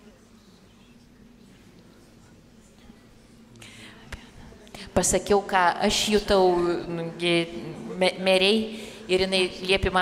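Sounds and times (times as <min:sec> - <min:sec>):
whispered speech: 0:00.0 - 0:05.2
woman speaking into a microphone: 0:04.2 - 0:10.0.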